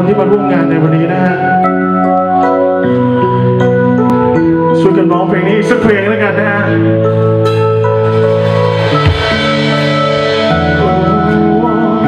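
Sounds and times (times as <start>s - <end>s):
live band chords: 5.7s - 12.0s
low bass note: 7.5s - 11.8s.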